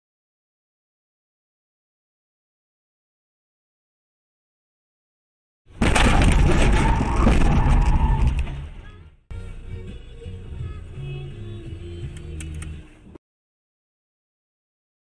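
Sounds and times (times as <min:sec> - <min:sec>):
scattering debris: 0:05.8 - 0:08.8
car crash impact: 0:05.8 - 0:08.9
clicks: 0:12.1 - 0:12.8.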